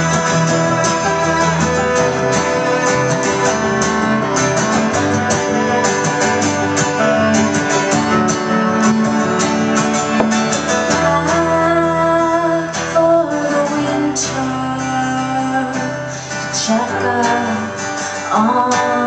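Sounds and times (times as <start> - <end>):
cello holding low notes: 0.0 - 12.2
acoustic guitars strumming: 0.0 - 19.0.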